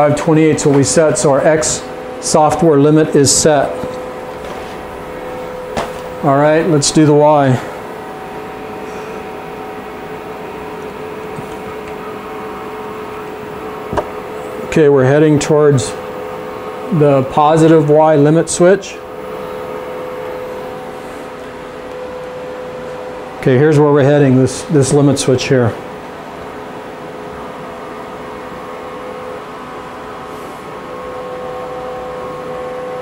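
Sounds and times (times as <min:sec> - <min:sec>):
machine hum with whine: 0:00.0 - 0:33.0
servo motor humming and whining: 0:07.6 - 0:14.7.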